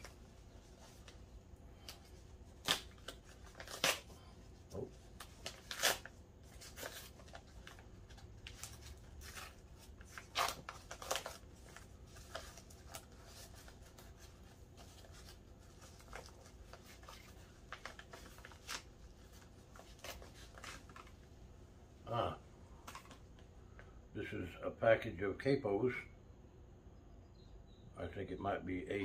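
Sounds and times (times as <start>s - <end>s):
packing wrap crinkling: 1.8s - 4.2s, 4.8s - 21.3s.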